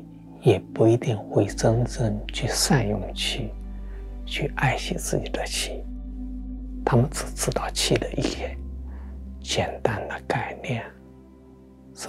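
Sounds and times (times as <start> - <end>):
quiet background music: 0.0 - 12.0
man speaking softly: 0.4 - 3.6, 4.3 - 5.9, 6.8 - 8.6, 9.4 - 11.0.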